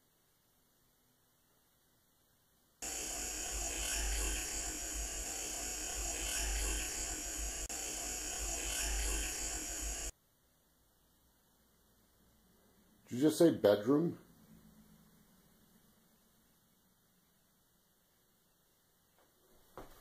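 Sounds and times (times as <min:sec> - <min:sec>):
recorder hiss: 0:00.0 - 0:20.0.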